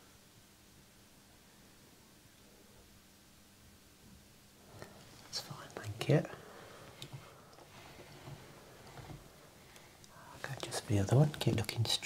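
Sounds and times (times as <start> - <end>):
soft speech: 5.3 - 6.4, 10.1 - 12.0.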